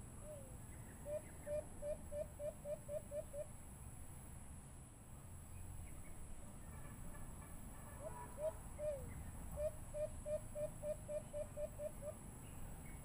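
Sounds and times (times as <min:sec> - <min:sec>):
dove cooing: 0:07.9 - 0:12.2.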